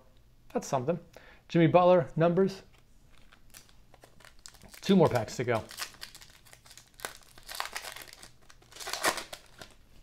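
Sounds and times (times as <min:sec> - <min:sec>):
foil wrapper crinkling: 0:03.1 - 0:09.8.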